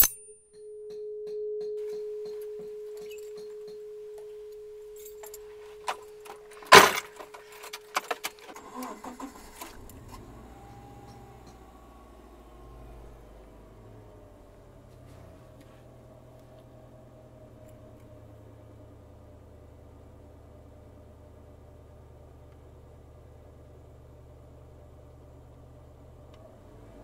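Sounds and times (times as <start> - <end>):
car keys jangling: 0.0 - 0.2, 2.4 - 3.6, 4.9 - 10.2
steady warning tone: 0.0 - 14.8
low steady rumble: 1.6 - 27.0.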